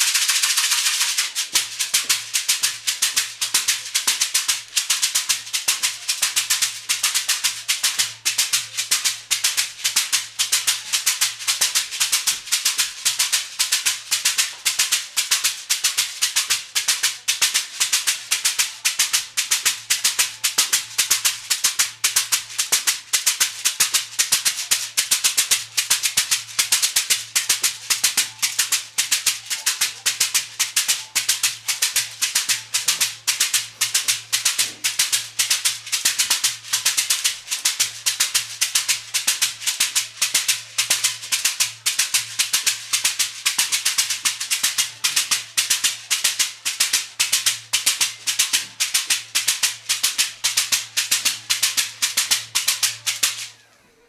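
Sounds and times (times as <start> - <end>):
bead shaker shaking: 0.0 - 53.5.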